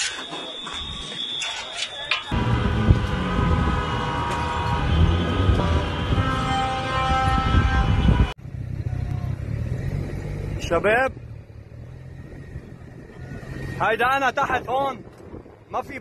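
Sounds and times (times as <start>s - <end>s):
loud low outdoor rumble: 2.3s - 15.8s.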